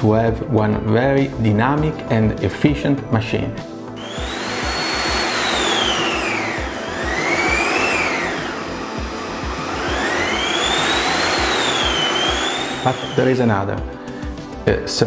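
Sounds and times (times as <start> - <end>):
motor whine changing pitch: 4.0 - 13.7
suction machine rushing air: 4.0 - 14.2.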